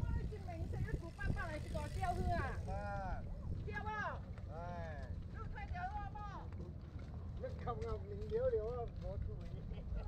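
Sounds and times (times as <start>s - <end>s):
wind rumble on microphone: 0.0s - 4.3s.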